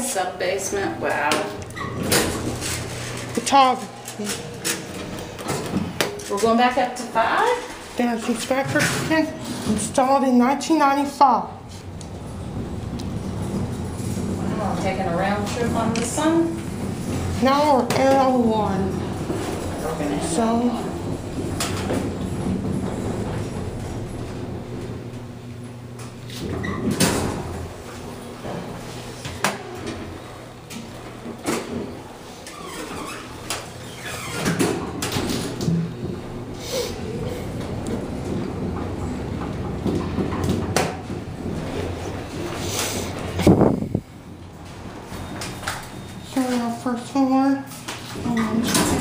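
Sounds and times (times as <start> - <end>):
elevator hum: 0.0 - 49.0.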